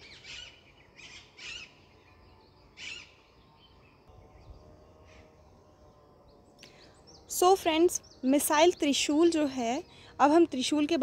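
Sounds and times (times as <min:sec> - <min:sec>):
birds chirping faintly: 0:00.0 - 0:11.0.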